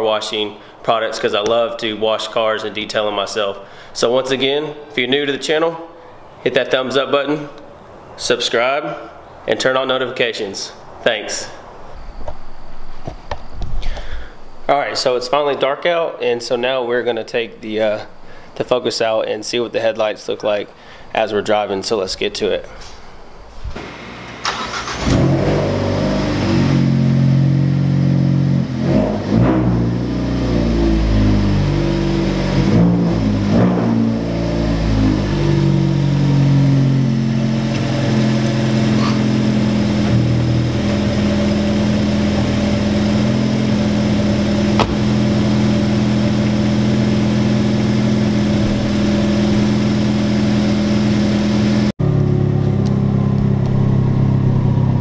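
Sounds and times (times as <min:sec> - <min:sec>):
car engine starting and idling: 0:23.8 - 0:55.0.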